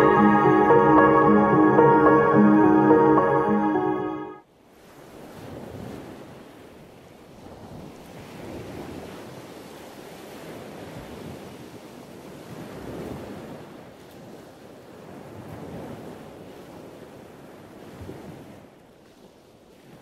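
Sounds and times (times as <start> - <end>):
soft music: 0.0 - 4.4.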